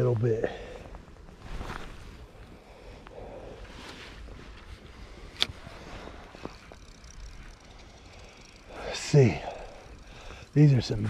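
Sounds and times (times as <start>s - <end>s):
fishing reel handling noise: 5.1s - 10.9s
sharp reel click: 6.7s - 10.1s.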